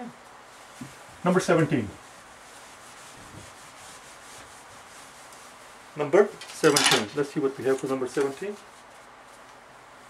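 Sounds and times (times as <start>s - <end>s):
eraser wiping a whiteboard: 0.4s - 9.7s.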